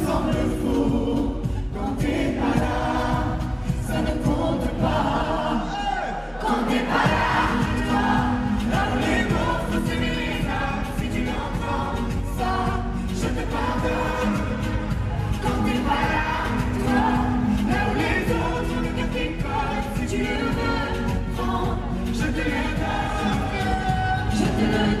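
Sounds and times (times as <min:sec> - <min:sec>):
crowd: 0:00.0 - 0:25.0
voices singing pop ballad: 0:00.0 - 0:25.0.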